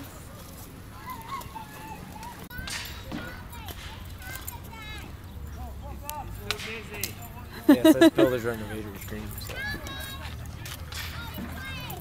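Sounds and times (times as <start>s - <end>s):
person laughing loudly: 7.5s - 8.3s.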